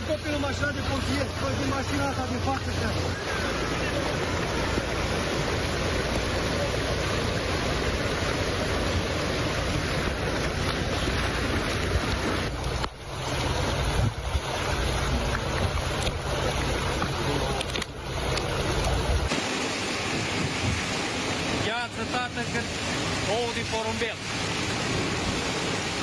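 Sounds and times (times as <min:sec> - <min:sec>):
fast-flowing floodwater: 0:00.0 - 0:26.0
wind buffeting microphone: 0:02.6 - 0:19.3, 0:20.0 - 0:21.6.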